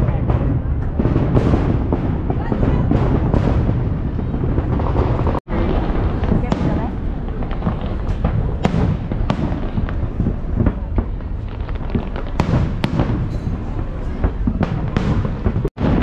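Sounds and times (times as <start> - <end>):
fireworks bursting and cracking: 0.0 - 16.0
people chattering: 0.0 - 16.0.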